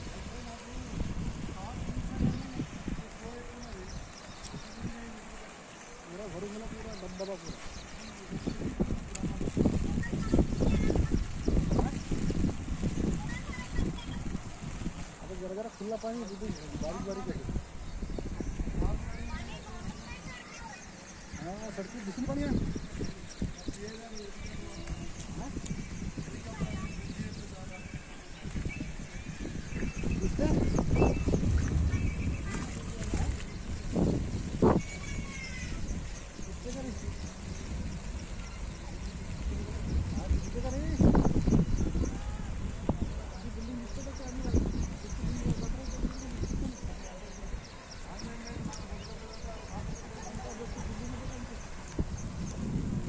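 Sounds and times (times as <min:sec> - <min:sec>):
people talking: 0:00.0 - 0:14.4, 0:15.2 - 0:17.6, 0:18.3 - 0:52.1
people's voices: 0:00.0 - 0:53.0
low rumble: 0:30.6 - 0:34.6.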